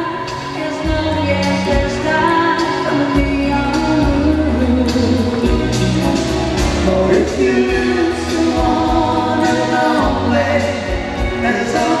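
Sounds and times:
woman singing: 0.0s - 6.1s, 7.1s - 12.0s
country band playing: 0.0s - 12.0s
man singing harmony: 6.7s - 12.0s.

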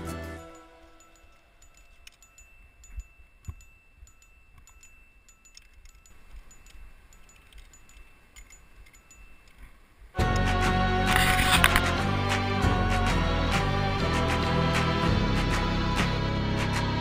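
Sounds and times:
metal climbing gear clinking: 0.3s - 10.2s, 11.1s - 11.9s.

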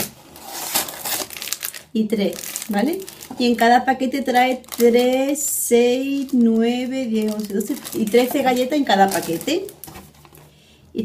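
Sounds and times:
plastic wrapper crinkling: 0.0s - 10.5s.

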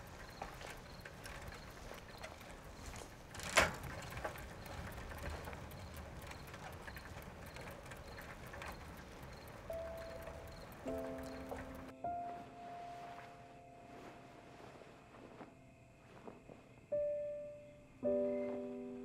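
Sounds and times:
faint regular chirping: 0.0s - 12.0s
held music notes: 3.7s - 15.4s.

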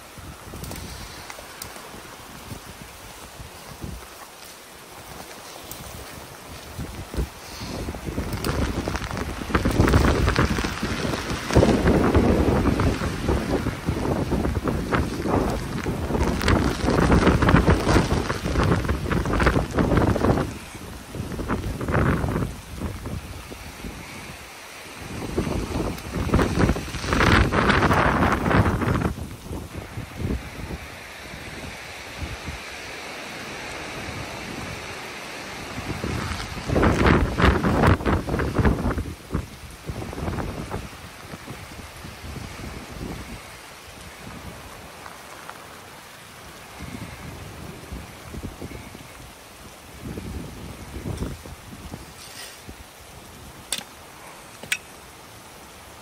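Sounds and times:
rain and sleet hissing: 0.0s - 56.0s
strong wind gusting: 0.0s - 56.0s.

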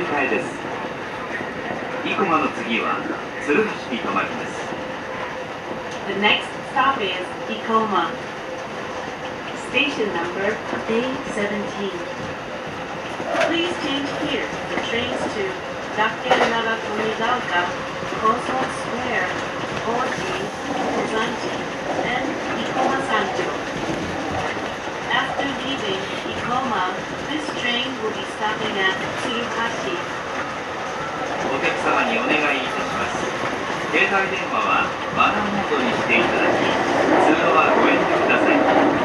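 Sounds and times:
train running noise: 0.0s - 39.0s
voices: 0.0s - 39.0s
wheel-on-rail clatter: 5.6s - 39.0s.

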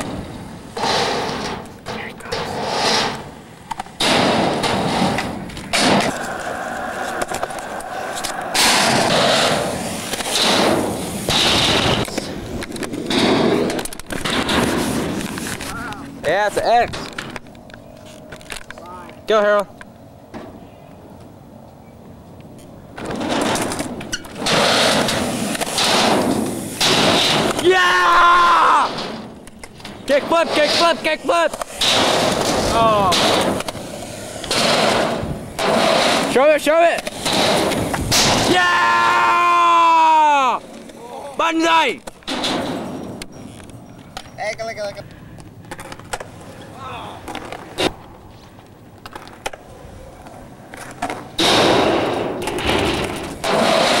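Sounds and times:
skateboard wheels rolling on concrete: 0.0s - 54.0s.

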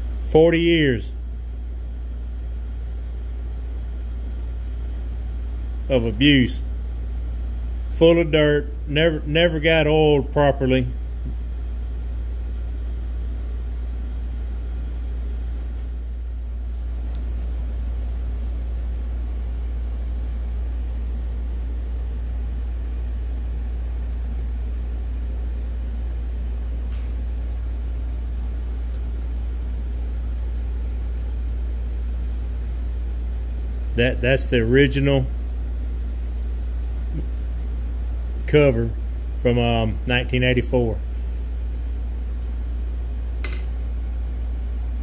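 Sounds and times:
steady low rumble: 0.0s - 45.0s.

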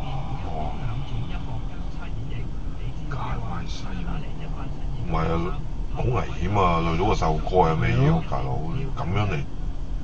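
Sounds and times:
voice faintly talking: 0.0s - 9.3s
car idling from inside cabin: 0.0s - 10.0s.

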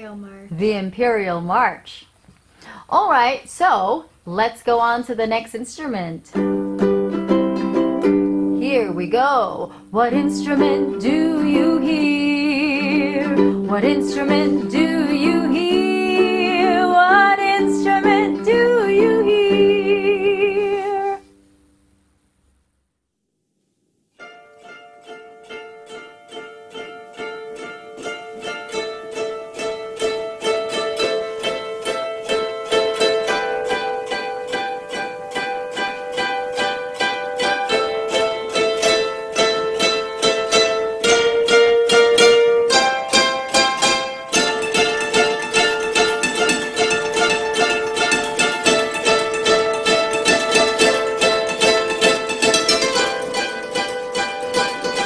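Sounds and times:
koto ensemble plucking: 6.3s - 21.2s, 24.2s - 55.0s.

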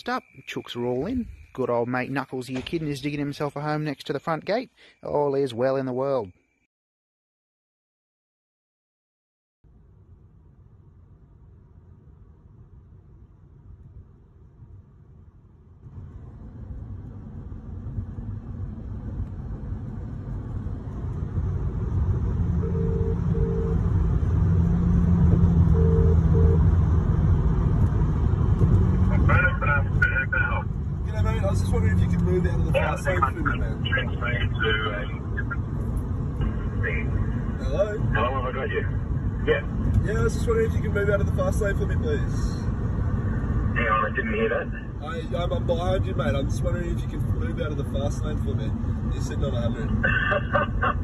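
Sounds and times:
voices on phone call: 0.0s - 6.3s, 29.1s - 35.7s, 36.4s - 42.6s, 43.7s - 51.0s
car cabin road and engine noise: 9.8s - 51.0s
phone ringback tone: 22.6s - 23.8s, 25.7s - 26.6s.

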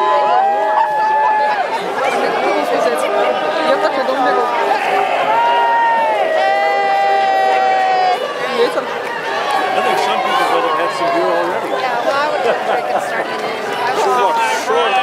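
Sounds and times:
crowd talking and calling out: 0.0s - 15.0s.

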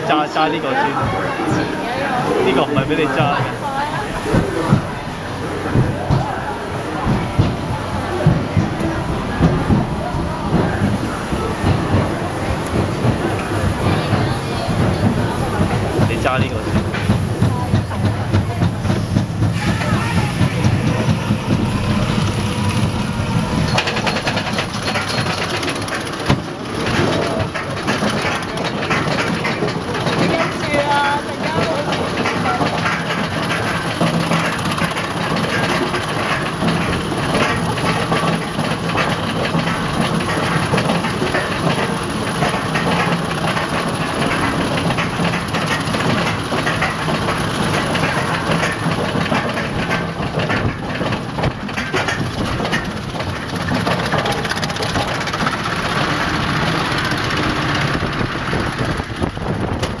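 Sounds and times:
roller coaster lift clatter: 0.0s - 60.0s.

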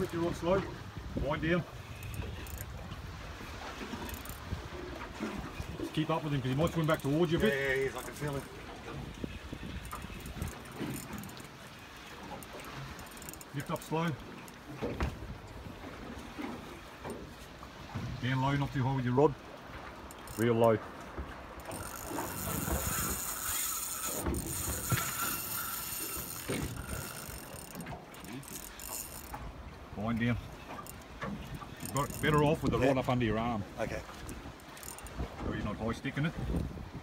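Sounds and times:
wind rumbling on microphone: 0.0s - 13.1s, 21.2s - 37.0s
fishing reel ticks: 1.7s - 3.1s, 3.8s - 14.8s, 20.0s - 20.8s, 21.6s - 29.4s, 30.1s - 32.9s, 34.1s - 35.4s
fishing reel whirring: 1.7s - 14.6s, 20.0s - 20.6s, 21.6s - 29.5s, 30.6s - 32.7s, 34.1s - 35.4s
faint high clicks and rattles: 5.8s - 15.0s, 19.9s - 29.5s, 30.2s - 32.8s.

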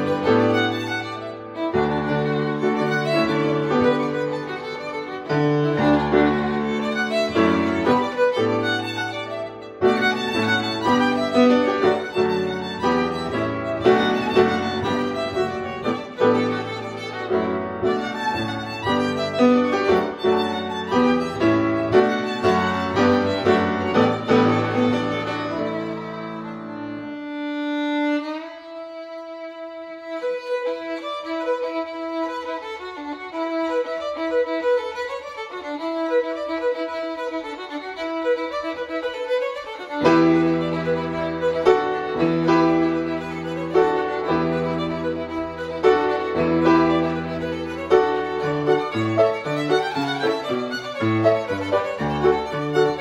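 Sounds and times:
grand piano: 0.0s - 53.0s
violin playing fiddle tune: 0.0s - 53.0s.

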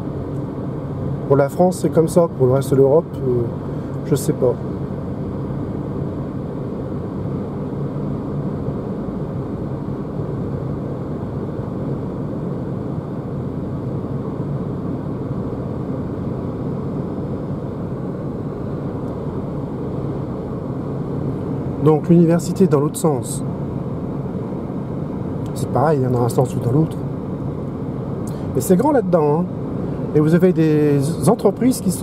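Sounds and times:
road and tyre noise: 0.0s - 32.0s.

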